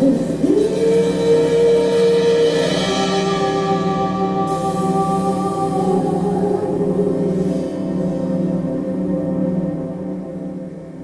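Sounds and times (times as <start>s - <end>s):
drum kit: 0.0s - 7.9s
woman singing: 0.0s - 8.3s.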